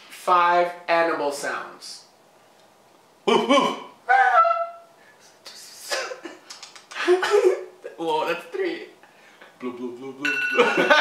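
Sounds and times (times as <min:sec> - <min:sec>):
man imitating animal call: 0:03.3 - 0:04.9.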